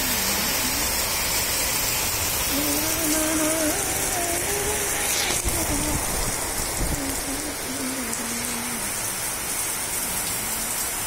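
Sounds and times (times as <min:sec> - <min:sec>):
heavy rain on leaves and paving: 0:00.0 - 0:11.0.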